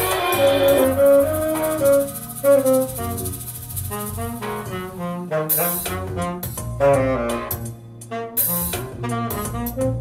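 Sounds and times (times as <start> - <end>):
backing music with bass line: 0.0 - 10.0
saxophone melody: 0.0 - 10.0.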